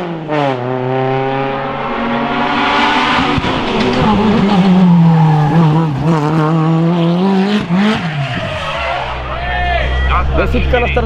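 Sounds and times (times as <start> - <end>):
race car engine at high revs: 0.0 - 9.3.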